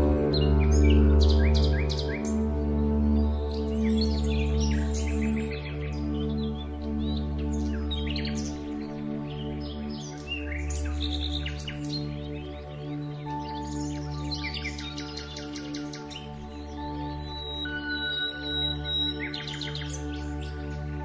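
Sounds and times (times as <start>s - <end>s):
birds chirping and trilling: 0.0s - 21.0s
soft ambient music: 0.0s - 21.0s.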